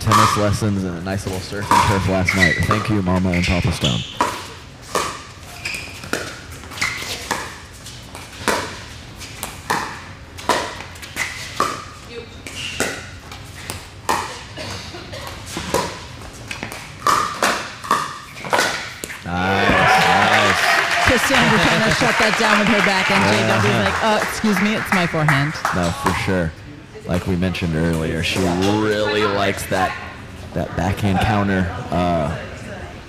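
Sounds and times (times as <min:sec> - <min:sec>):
crowd applauding and cheering: 0:19.4 - 0:26.3.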